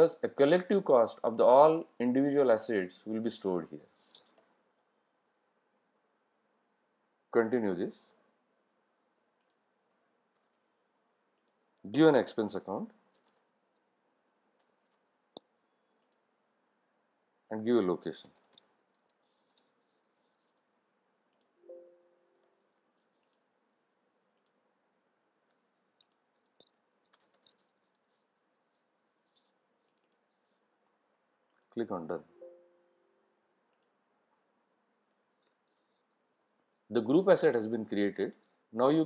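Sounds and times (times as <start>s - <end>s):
low steady hiss: 0.0s - 39.0s
steady tone: 21.6s - 22.6s
faint computer mouse clicks: 25.5s - 28.2s, 29.3s - 30.6s.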